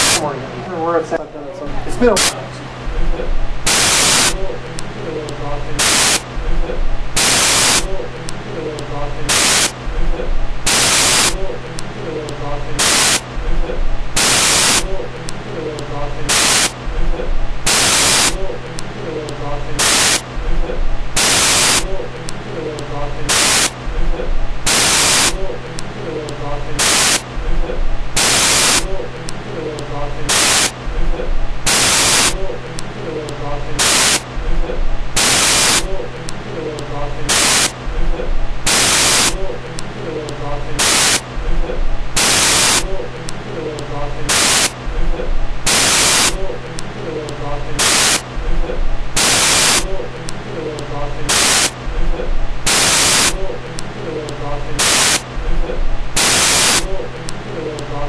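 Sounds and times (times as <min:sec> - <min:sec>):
static hiss bursts: 0:00.0 - 0:00.3, 0:01.7 - 0:08.5, 0:09.1 - 0:43.5, 0:44.1 - 0:50.5, 0:51.1 - 0:57.5
muffled voice: 0:00.0 - 0:58.0
steady hum: 0:00.0 - 0:58.0.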